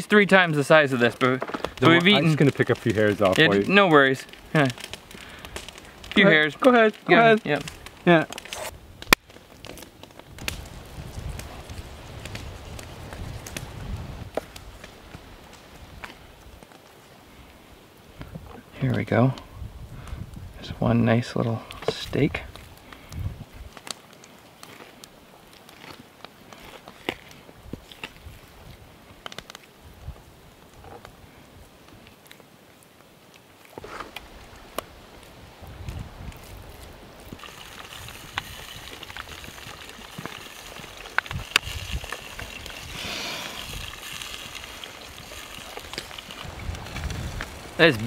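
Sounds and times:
steady outdoor hiss: 0.0 - 48.0.

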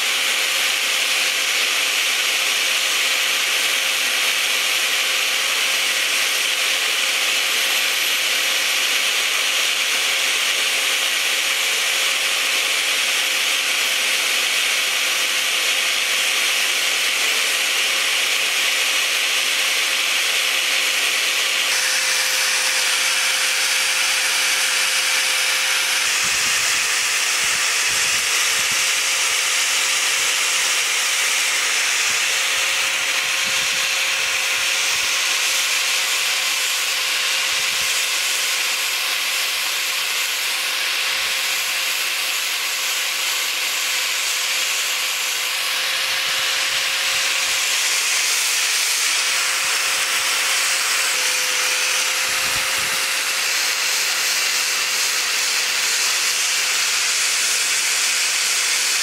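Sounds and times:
angle grinder grinding metal: 0.0 - 59.0.

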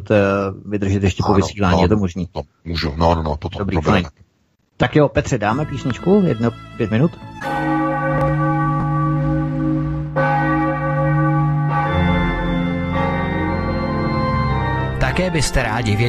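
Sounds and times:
bell-like held chords: 7.4 - 16.0.

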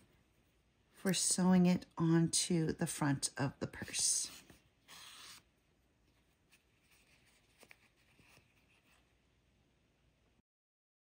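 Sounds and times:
soft rustling of yarn: 6.0 - 9.4.

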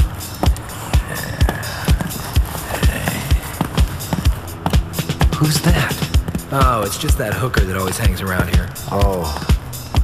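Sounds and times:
crisp clicking percussion: 0.0 - 10.0
kick drum beat: 0.0 - 10.0.

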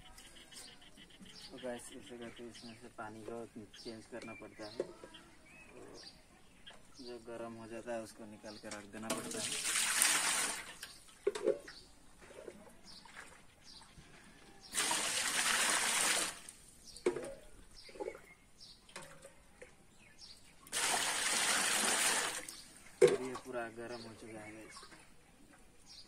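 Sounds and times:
water pouring from a mug: 9.1 - 11.3, 14.7 - 16.5, 20.7 - 23.5.

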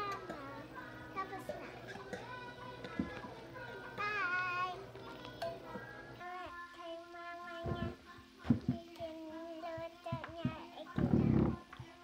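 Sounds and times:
child singing long notes: 0.0 - 12.0.

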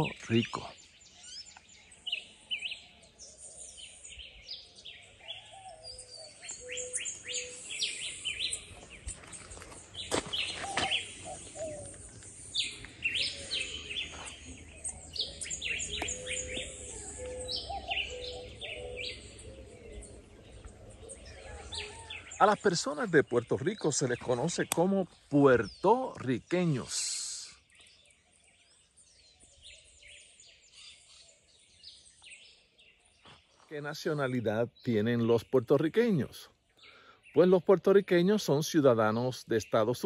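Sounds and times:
birds chirping: 0.0 - 40.0.

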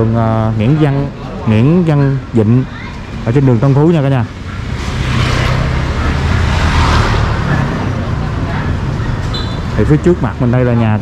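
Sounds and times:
motor scooter passing: 3.1 - 9.8.

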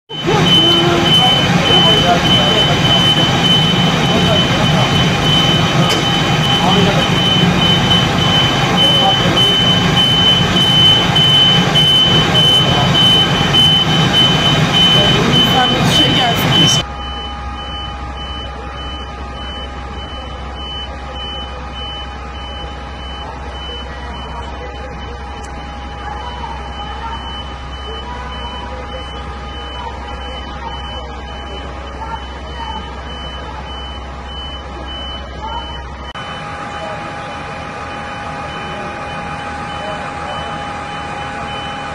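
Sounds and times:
faint repeating beep: 0.1 - 41.9
high electronic beep pulsing: 0.1 - 41.9
people's voices: 0.1 - 41.9
steady hum: 0.1 - 41.9.

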